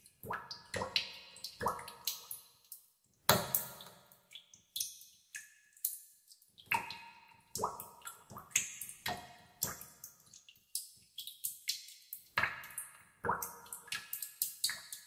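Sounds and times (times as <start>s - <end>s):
water dripping into water: 0.0s - 15.0s.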